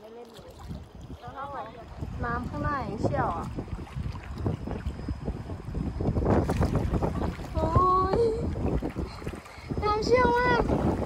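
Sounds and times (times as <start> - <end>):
river current rushing and splashing: 0.0 - 11.0
wind buffeting microphone: 0.1 - 11.0.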